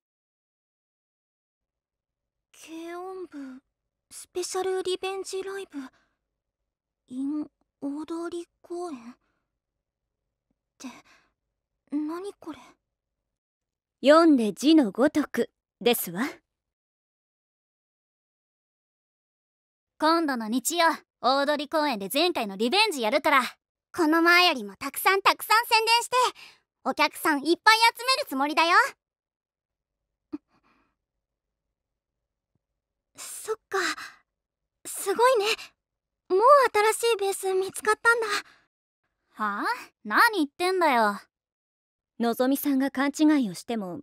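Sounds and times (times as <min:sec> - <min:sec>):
girl speaking: 0:02.6 - 0:03.5, 0:04.2 - 0:05.9, 0:07.1 - 0:09.1, 0:12.0 - 0:12.6, 0:14.0 - 0:16.4, 0:20.0 - 0:29.0, 0:34.9 - 0:35.6, 0:36.3 - 0:38.4, 0:39.4 - 0:41.2, 0:42.2 - 0:44.0.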